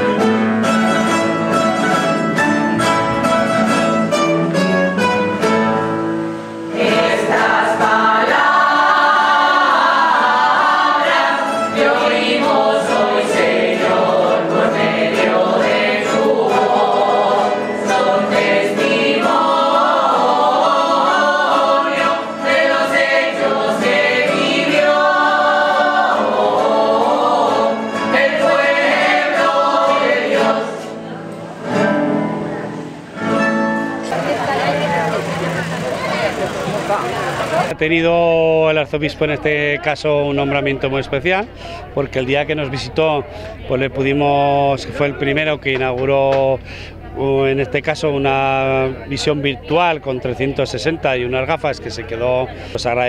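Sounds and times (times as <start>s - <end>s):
mixed choir singing: 6.5s - 33.3s.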